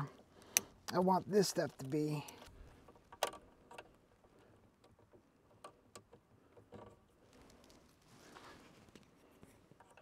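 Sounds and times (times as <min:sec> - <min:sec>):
cable ends clicking into terminals: 0:00.0 - 0:04.0.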